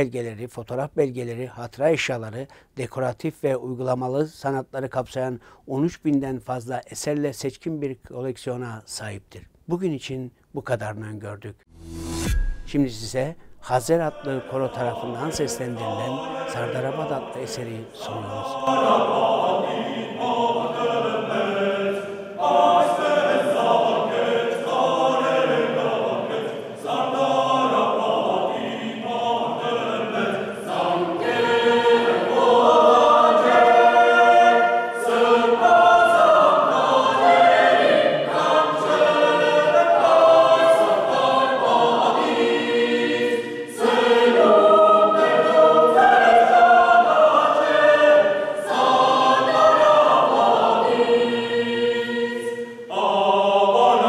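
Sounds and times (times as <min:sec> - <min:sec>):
mixed choir singing a cappella: 0:13.6 - 0:54.0.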